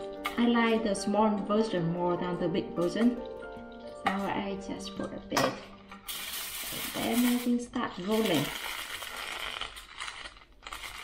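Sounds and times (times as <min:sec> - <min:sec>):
aluminium foil crinkling: 0:05.8 - 0:11.0.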